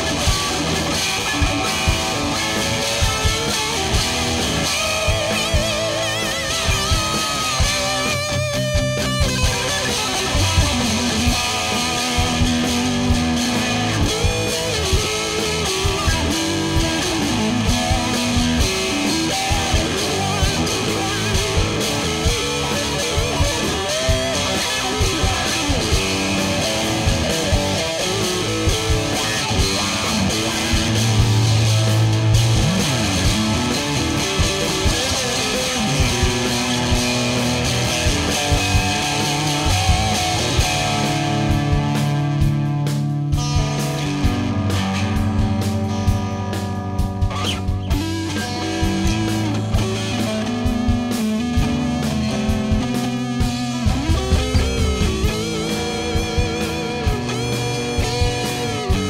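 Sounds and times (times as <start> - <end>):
electric guitar through amplifier: 0.0 - 59.0.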